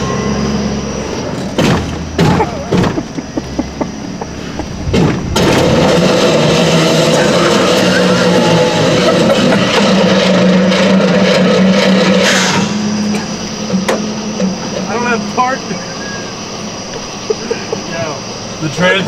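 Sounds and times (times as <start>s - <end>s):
truck engine revving high: 0.0s - 18.6s.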